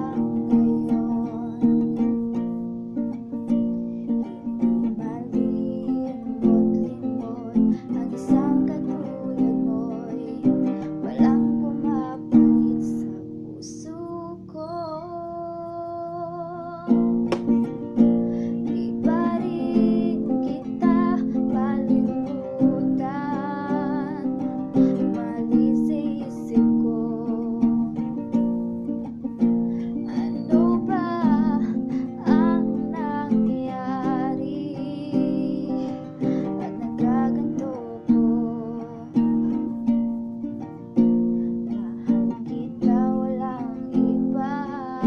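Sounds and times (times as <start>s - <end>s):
acoustic guitar strumming: 0.0s - 45.0s
woman singing: 0.0s - 45.0s.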